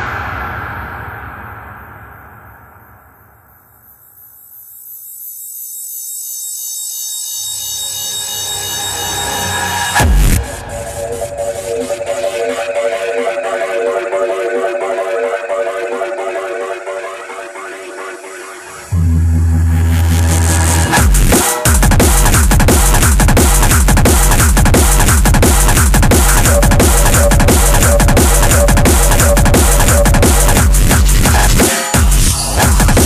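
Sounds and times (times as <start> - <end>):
high synth tones: 6.9 - 21.0, 26.2 - 30.8
low bass: 18.9 - 33.0.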